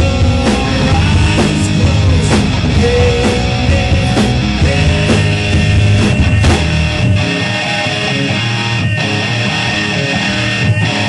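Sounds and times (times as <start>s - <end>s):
drum and cymbal hits: 0.0s - 8.2s
rock band playing: 0.0s - 11.0s.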